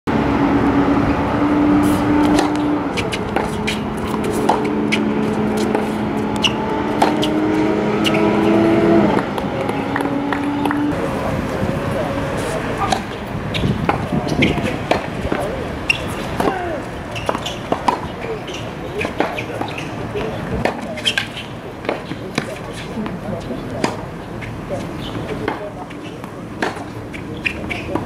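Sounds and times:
tennis ball struck by racquets: 1.8 - 10.9, 12.8 - 22.9, 23.8 - 28.0
tennis ball bouncing on court: 2.2 - 10.9, 12.8 - 28.0.

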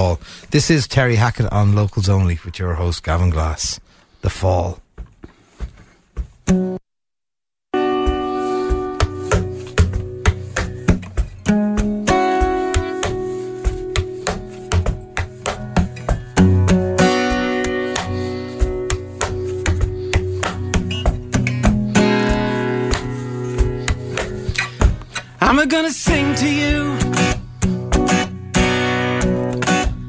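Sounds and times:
acoustic guitar strummed and picked: 7.8 - 30.0
plucked strings: 7.8 - 30.0.

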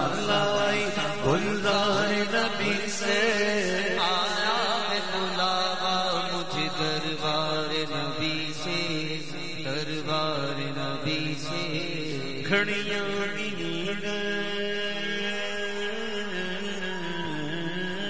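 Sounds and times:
devotional singing: 0.0 - 18.0.

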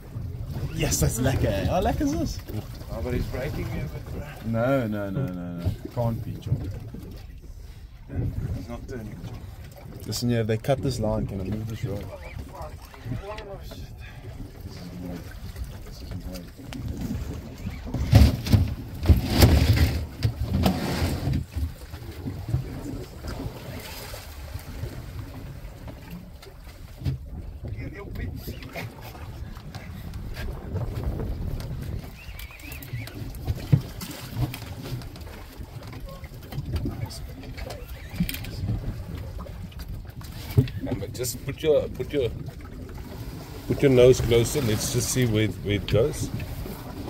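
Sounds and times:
small boat engine rumble: 0.0 - 47.0.

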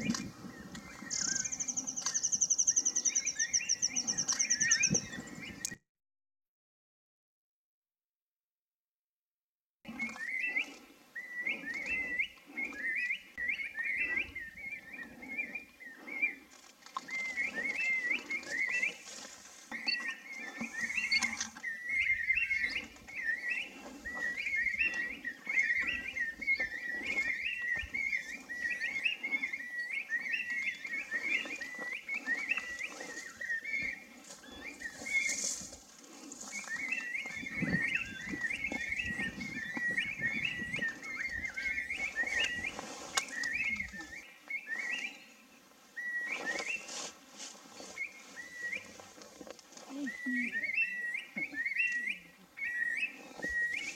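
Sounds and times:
songbird warbling: 0.1 - 5.8, 19.7 - 35.6, 36.4 - 45.3, 49.9 - 53.9.

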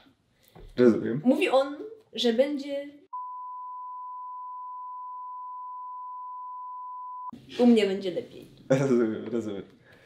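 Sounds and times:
censor bleep tone: 3.1 - 7.3.

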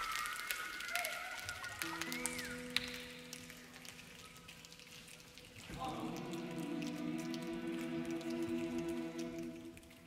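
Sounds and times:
children's choir singing chord: 5.7 - 9.5.

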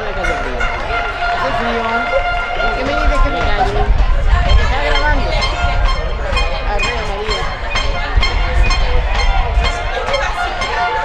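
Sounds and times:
steady low rumble: 0.0 - 11.0
voices shouting and calling: 0.0 - 11.0.

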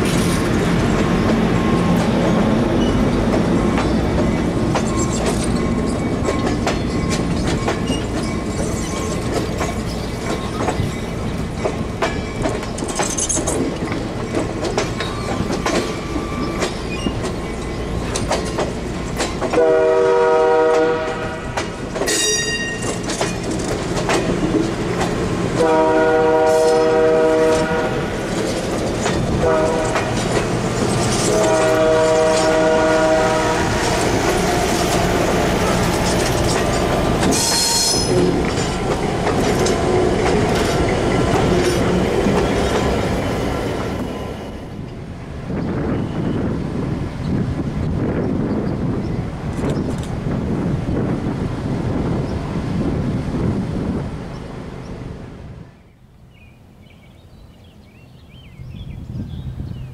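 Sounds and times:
train cars rumbling on track: 0.0 - 59.9
high wheel squeals: 1.6 - 11.4, 15.0 - 18.2
locomotive air horn blowing: 19.6 - 22.8, 25.6 - 28.1, 29.4 - 30.2, 31.2 - 34.0.

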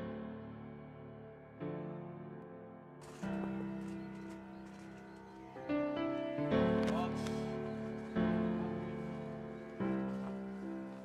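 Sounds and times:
slow piano ballad: 0.0 - 11.0.

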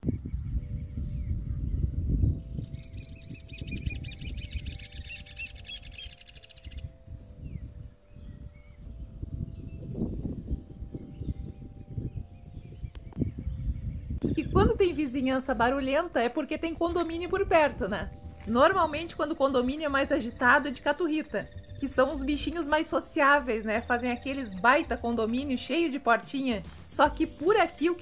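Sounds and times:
bird chirping: 0.2 - 15.4.

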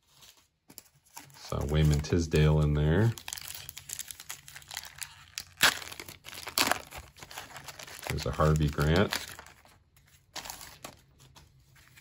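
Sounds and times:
card pack wrapper crinkling and tearing: 0.8 - 12.0
loud crackling rips: 3.2 - 9.4.

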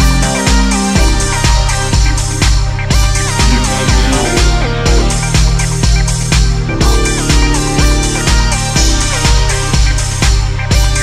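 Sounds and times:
deep house music: 3.2 - 8.5
synth notes sliding down: 3.4 - 5.4.

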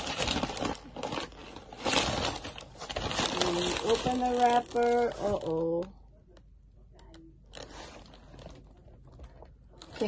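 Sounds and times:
packing paper rustling and crinkling: 0.0 - 5.9, 7.5 - 10.0.

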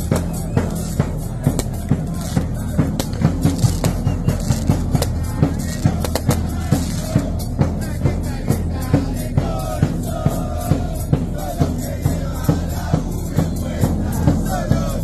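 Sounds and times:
bass drums beating: 0.0 - 15.0
crowd voices: 0.0 - 15.0.

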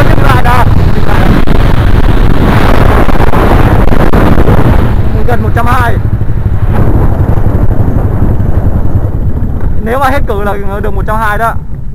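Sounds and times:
motorcycle engine running: 0.0 - 11.9
wind buffeting microphone: 0.0 - 11.9.

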